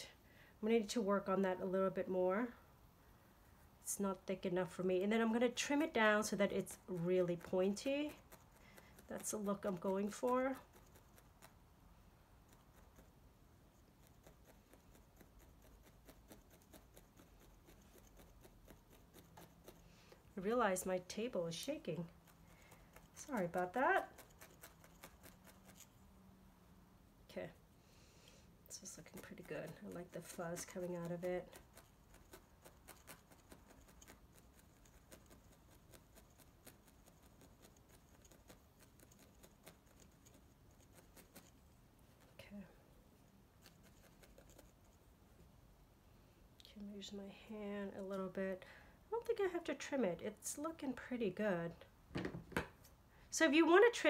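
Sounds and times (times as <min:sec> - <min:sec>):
felting needle ticking into foam: 0:05.7 - 0:11.6.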